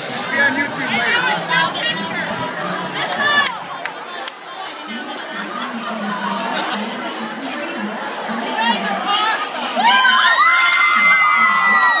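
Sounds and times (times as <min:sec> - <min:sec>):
girls screaming a cheer: 0:09.8 - 0:12.0.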